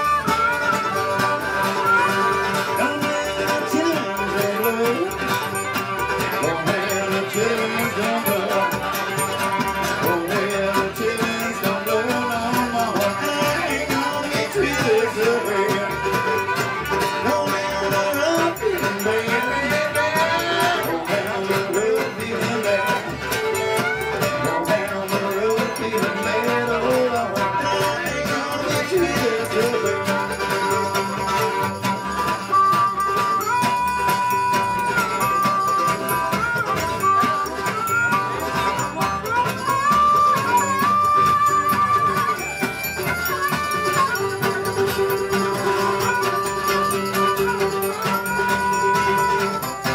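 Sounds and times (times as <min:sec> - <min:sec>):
fiddle melody: 0:00.0 - 0:49.9
strummed guitar rhythm: 0:00.0 - 0:49.9
upright bass notes: 0:00.0 - 0:49.9.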